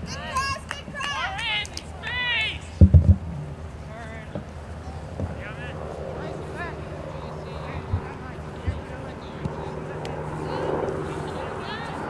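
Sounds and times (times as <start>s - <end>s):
distant shouting voices: 0.0s - 12.0s
low background hum: 0.0s - 12.0s.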